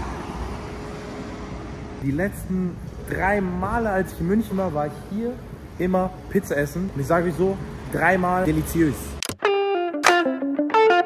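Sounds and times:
car engine and road noise: 0:00.0 - 0:09.4.

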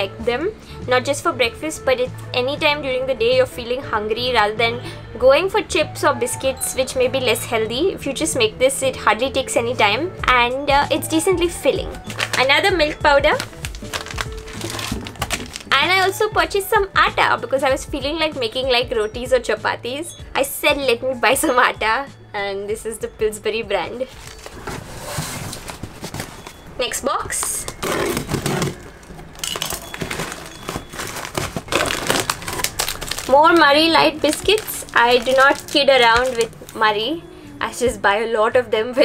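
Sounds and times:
background music: 0:00.0 - 0:39.0
plastic packet crinkling: 0:12.1 - 0:12.6, 0:13.3 - 0:16.2, 0:27.6 - 0:36.8
cutter scraping packing tape: 0:29.8 - 0:33.3.

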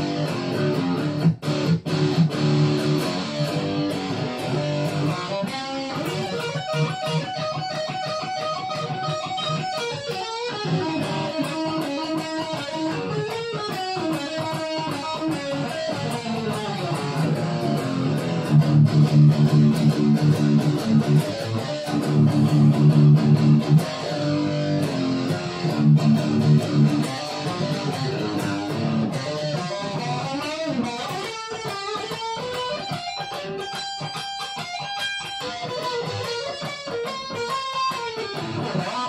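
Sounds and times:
electric guitar playing: 0:00.0 - 0:39.0.

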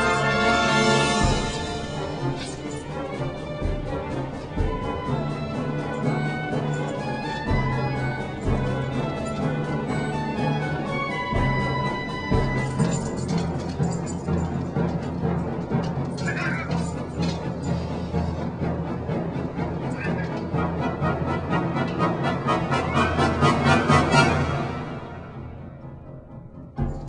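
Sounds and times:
orchestral music: 0:00.0 - 0:27.0.

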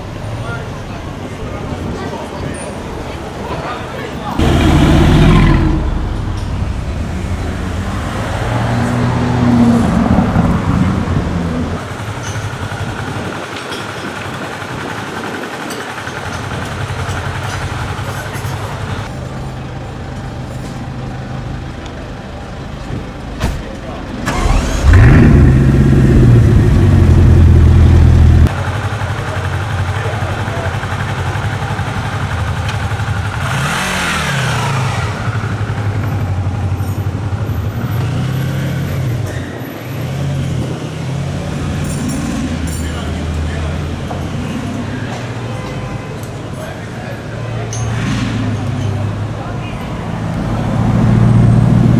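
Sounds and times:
engines idling: 0:00.0 - 0:51.9
engine revving: 0:04.4 - 0:11.8, 0:24.2 - 0:28.5, 0:33.3 - 0:35.8
sports car engine starting: 0:04.4 - 0:11.8, 0:23.7 - 0:30.2.

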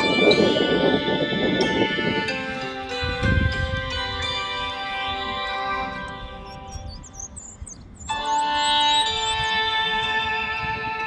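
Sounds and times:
soft instrumental music: 0:00.0 - 0:11.0
high bird chirps: 0:04.3 - 0:10.1.

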